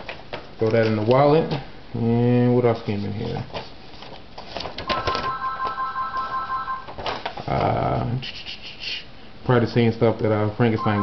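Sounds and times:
paper rustling: 2.8s - 7.8s.

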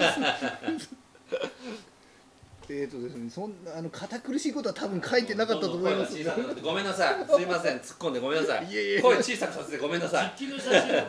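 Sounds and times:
man chuckling: 0.0s - 1.8s
man speaking: 2.7s - 11.0s.

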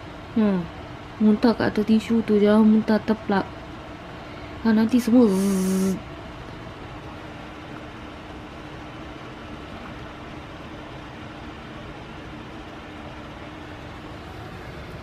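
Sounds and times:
room hum and hiss: 0.0s - 15.0s.

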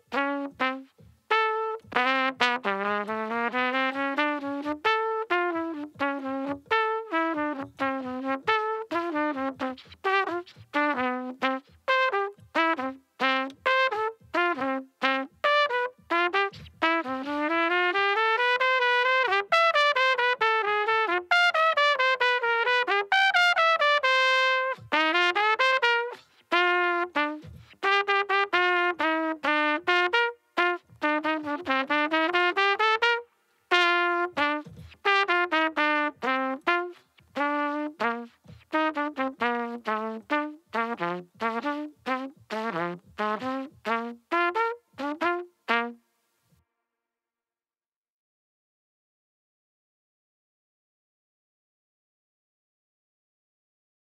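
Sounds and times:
solo trumpet melody: 0.0s - 46.7s.

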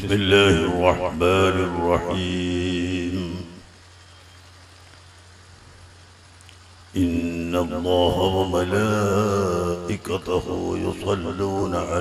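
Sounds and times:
faint hiss: 0.0s - 12.0s
low steady hum: 0.0s - 12.0s.

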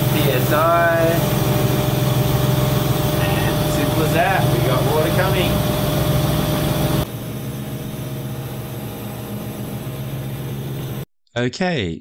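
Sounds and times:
electric pump motor humming: 0.0s - 11.0s
thin constant whine: 0.0s - 11.0s.

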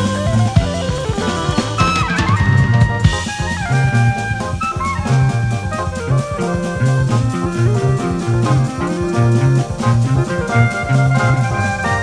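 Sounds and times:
electric bass notes: 0.0s - 12.0s
jazz-rock drum kit: 0.0s - 12.0s.

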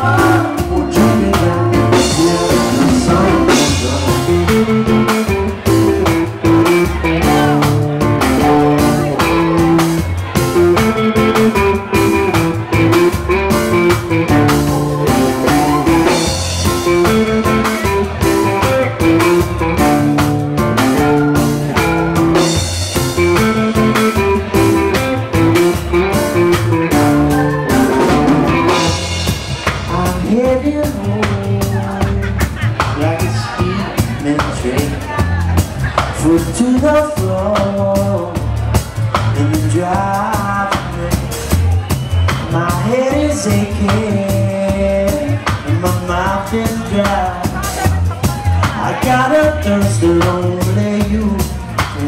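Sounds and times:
electric guitar: 0.0s - 52.0s
live band playing: 0.0s - 52.0s.

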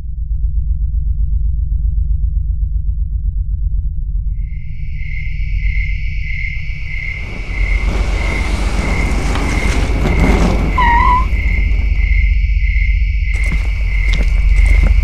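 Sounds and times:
deep rumble: 0.0s - 15.0s
rushing noise: 6.5s - 15.0s.

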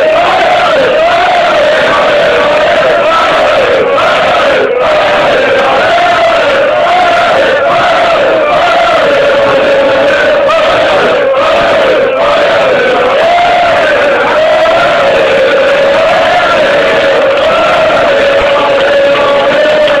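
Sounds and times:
football crowd chanting: 0.0s - 20.0s.

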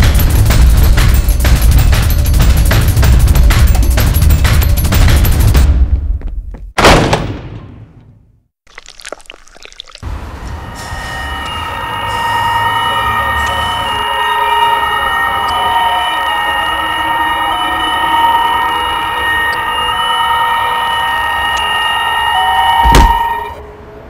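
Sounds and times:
shrill screeching drone: 10.2s - 23.9s.

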